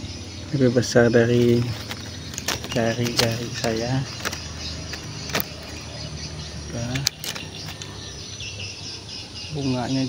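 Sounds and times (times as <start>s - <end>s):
low steady motor rumble: 0.0s - 10.0s
camera clicks and rustles in branches: 1.4s - 6.0s, 6.9s - 8.1s.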